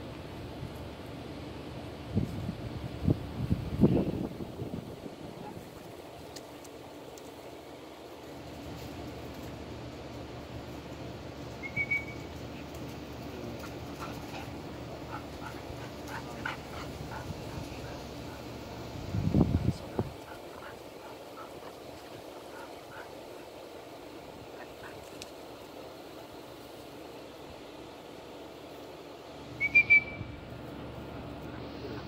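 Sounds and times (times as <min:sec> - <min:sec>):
low outdoor background noise: 0:00.0 - 0:32.0
whistle short blasts: 0:11.6 - 0:12.3, 0:29.6 - 0:30.4.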